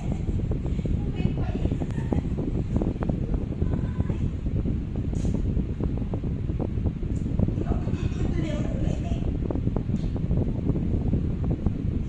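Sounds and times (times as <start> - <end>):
air buffeting microphone: 0.0 - 12.0.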